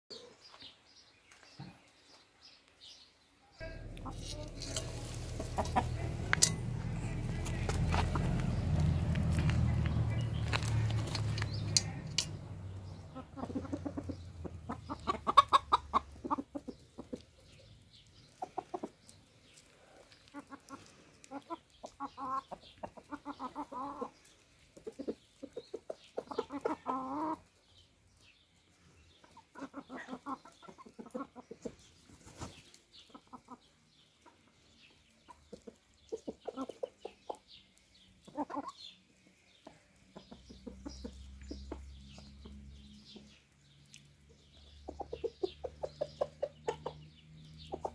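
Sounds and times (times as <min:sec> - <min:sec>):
chickens clucking: 0:03.6 - 0:47.9.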